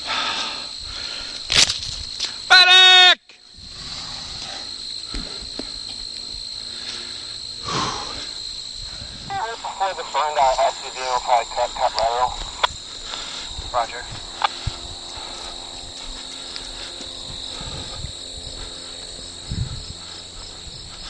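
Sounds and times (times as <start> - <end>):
insects trilling: 0.0 - 21.0
indistinct speech: 9.3 - 12.4, 13.7 - 14.1.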